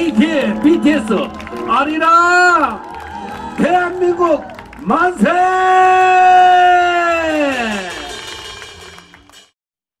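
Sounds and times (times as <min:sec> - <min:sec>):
outdoor stage sound: 0:00.0 - 0:09.6.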